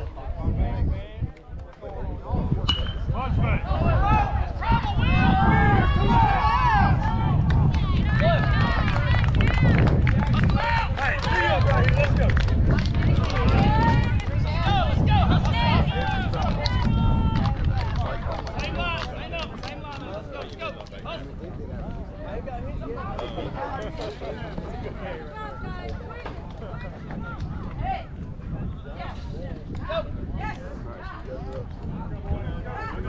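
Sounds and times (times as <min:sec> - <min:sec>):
crowd shouting and cheering: 0:02.5 - 0:21.3.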